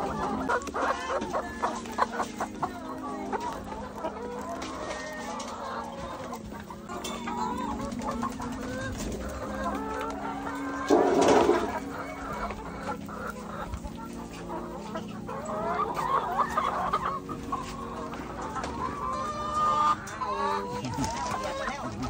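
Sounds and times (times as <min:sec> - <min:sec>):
hens clucking and squawking: 0:00.0 - 0:22.0.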